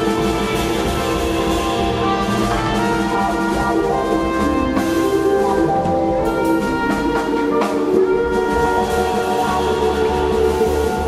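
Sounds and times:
jazz band playing: 0:00.0 - 0:11.0
trumpet and trombone: 0:00.0 - 0:11.0.

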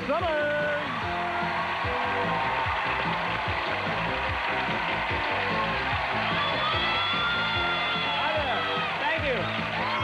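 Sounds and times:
game show music with beat: 0:00.0 - 0:10.0
studio audience applauding: 0:00.0 - 0:10.0.

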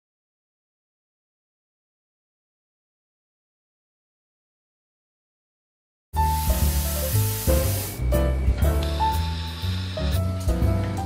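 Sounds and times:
steam wand hissing: 0:06.2 - 0:08.2, 0:08.9 - 0:10.5
background music: 0:06.2 - 0:11.0.

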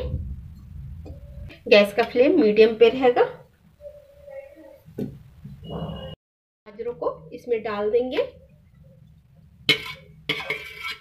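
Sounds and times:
spoon scraping a steel bowl: 0:09.7 - 0:11.0.

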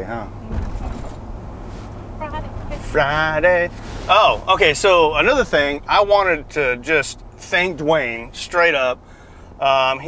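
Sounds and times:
truck engine drone: 0:00.0 - 0:10.0.

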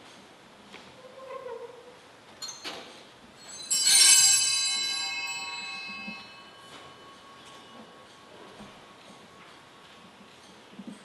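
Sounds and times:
bell ringing: 0:03.4 - 0:09.4.

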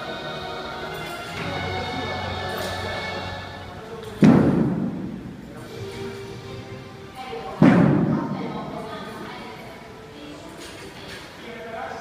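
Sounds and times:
heavy thud echoing in hall: 0:04.0 - 0:05.5, 0:07.5 - 0:08.8.

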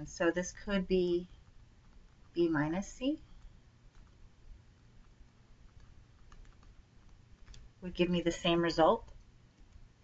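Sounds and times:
woman speaking: 0:00.0 - 0:01.4, 0:02.3 - 0:03.4, 0:07.8 - 0:09.2
low electrical hum: 0:00.0 - 0:10.0
stylus tapping on tablet: 0:04.8 - 0:07.7.

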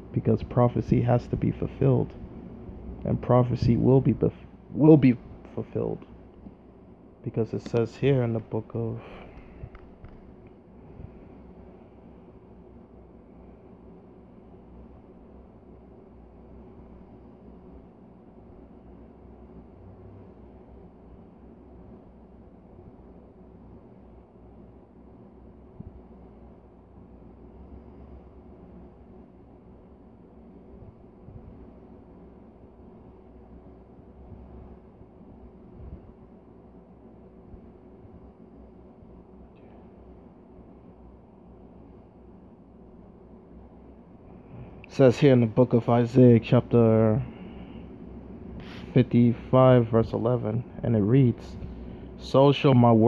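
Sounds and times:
low rumble with hum: 0:00.0 - 0:53.0.

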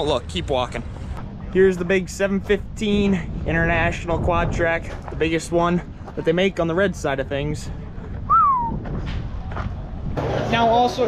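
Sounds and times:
short whistle-like note: 0:08.3 - 0:08.8.

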